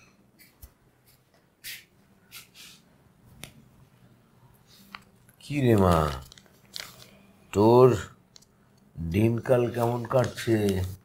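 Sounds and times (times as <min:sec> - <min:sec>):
footsteps on tiled floor: 0:00.3 - 0:02.8
newspaper rustling: 0:05.6 - 0:07.2, 0:09.4 - 0:11.0.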